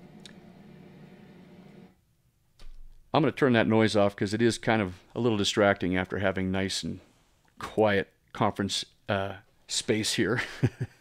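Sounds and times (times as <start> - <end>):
faint air conditioning noise: 0.0 - 11.0.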